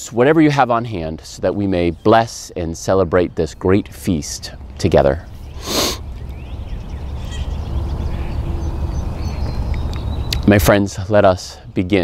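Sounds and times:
faint distant bird calls: 0.2s - 12.0s.

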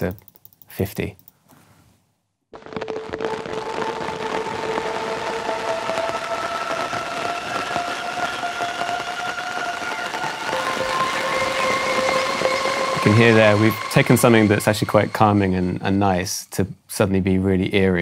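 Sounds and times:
dense crackling texture: 2.5s - 16.4s
held chorus-like tones: 5.8s - 16.4s.

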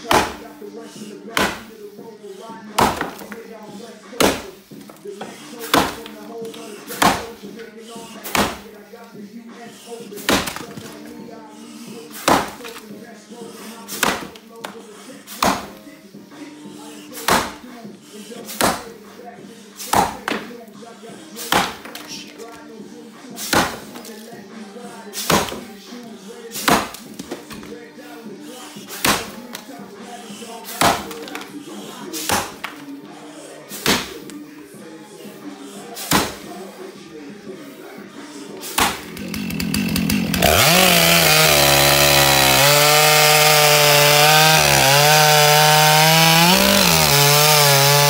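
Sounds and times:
axe chopping log: 0.0s - 0.5s, 1.3s - 1.8s, 2.8s - 3.4s, 4.2s - 4.9s, 5.6s - 7.4s, 8.2s - 8.7s, 10.2s - 11.0s, 12.1s - 12.8s, 13.9s - 15.8s, 17.2s - 17.7s, 18.5s - 19.0s, 19.8s - 20.5s, 21.4s - 22.2s, 23.4s - 24.2s, 25.2s - 25.7s, 26.6s - 27.8s, 28.9s - 29.7s, 30.6s - 31.5s, 32.2s - 32.8s, 33.7s - 34.3s, 36.0s - 36.5s, 38.7s - 48.0s.

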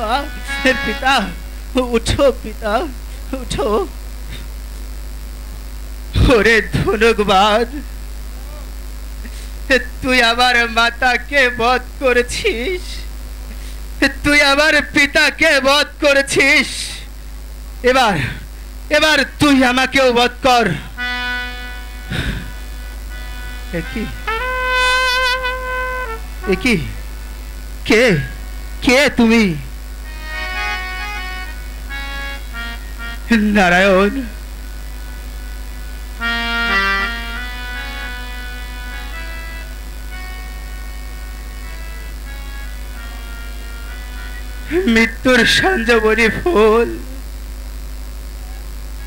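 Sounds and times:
faint held music notes: 0.0s - 1.3s
instrument holding steady note: 0.0s - 2.3s, 21.0s - 45.3s
man's amplified voice declaiming: 0.0s - 3.9s, 6.2s - 7.8s, 9.7s - 13.1s, 14.0s - 17.1s, 17.8s - 20.9s, 23.7s - 24.3s, 26.4s - 27.1s, 27.8s - 29.8s, 33.3s - 34.4s, 44.7s - 47.2s
low electrical hum: 0.0s - 49.0s.

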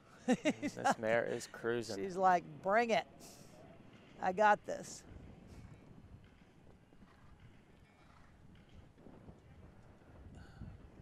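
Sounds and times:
horse hooves galloping on turf: 3.8s - 11.0s.

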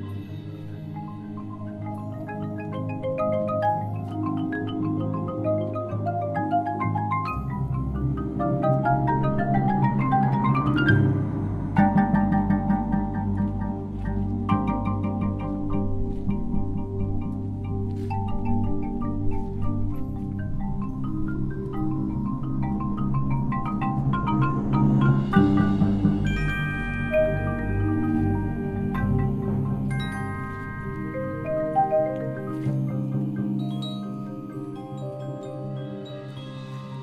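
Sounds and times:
marimbas and xylophone: 0.0s - 37.0s
timpani: 6.8s - 34.3s.

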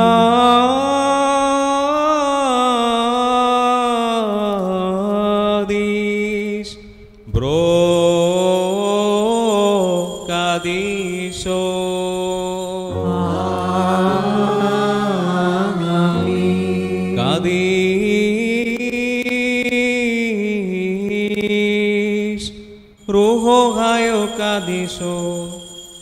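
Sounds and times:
person singing liturgical chant: 0.0s - 26.0s.

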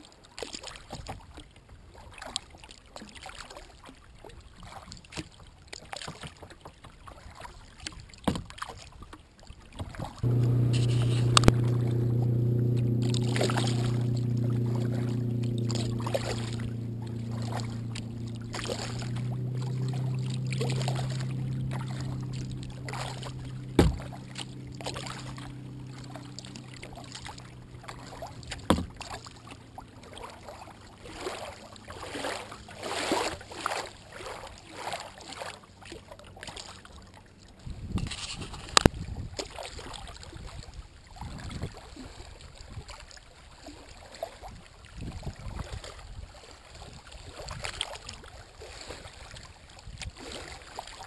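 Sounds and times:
small waves splashing against kayak: 0.0s - 51.0s
low hum: 10.2s - 34.2s
sharp knocks: 23.8s - 24.1s.

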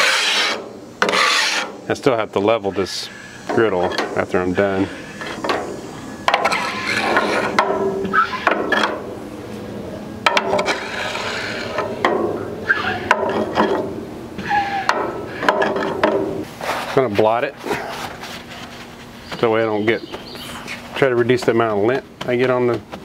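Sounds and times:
metal scraper on wet griddle: 0.0s - 1.8s, 6.3s - 9.0s, 10.3s - 12.0s.

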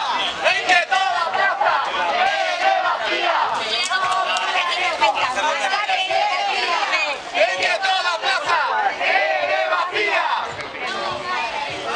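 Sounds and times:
crowd chanting slogans: 0.0s - 11.9s.

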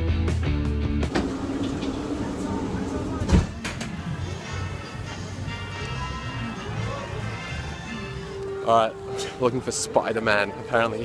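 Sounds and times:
train carriage hum: 1.1s - 5.4s.

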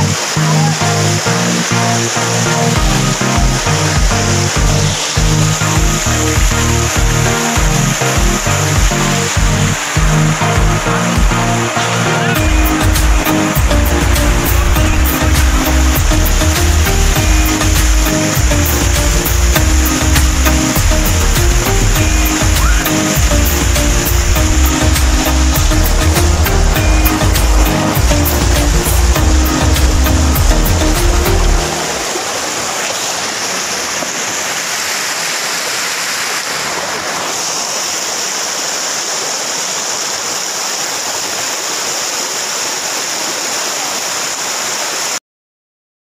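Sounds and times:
water pouring over weir: 0.0s - 45.2s
background music with beat: 0.8s - 32.1s.

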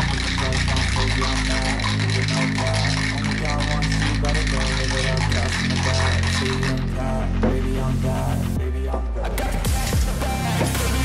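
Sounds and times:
ice rattling in cocktail shaker: 0.0s - 7.0s
rap song with heavy bass: 0.0s - 11.0s.

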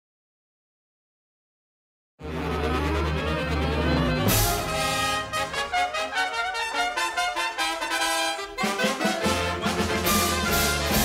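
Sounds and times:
orchestral cartoon music with brass: 2.2s - 11.0s.

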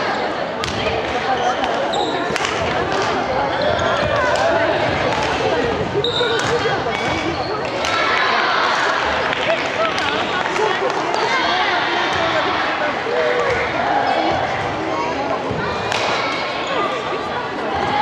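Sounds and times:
spectators chattering: 0.0s - 18.0s.

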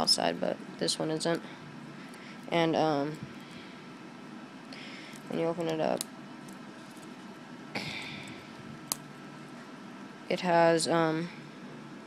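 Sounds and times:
handling noise: 5.1s - 9.8s.

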